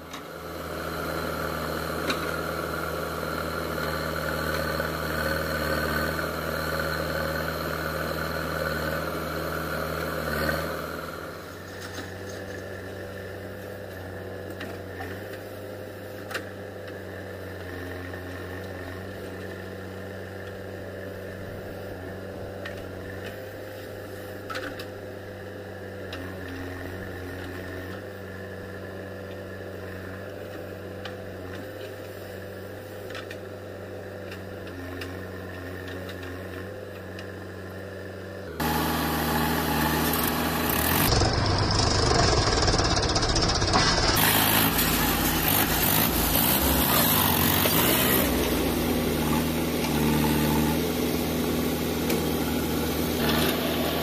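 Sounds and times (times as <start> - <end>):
diesel engines running: 0.0 - 54.0.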